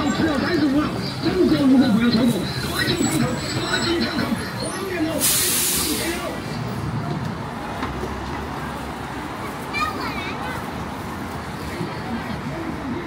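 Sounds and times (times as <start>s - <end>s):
passers-by talking: 0.0s - 13.0s
traffic: 0.0s - 13.0s
air brakes hissing: 5.1s - 6.4s.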